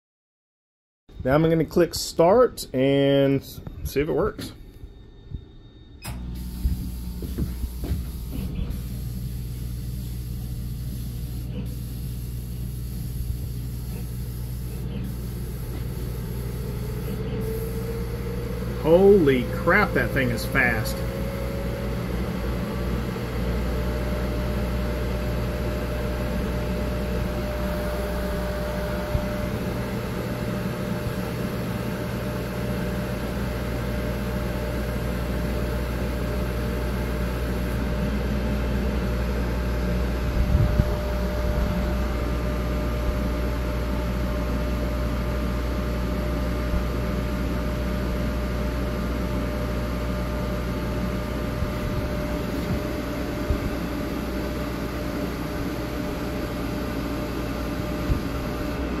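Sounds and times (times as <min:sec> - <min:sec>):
exhaust fan hum: 0:01.2 - 0:59.0
laser head whine: 0:03.6 - 0:45.2.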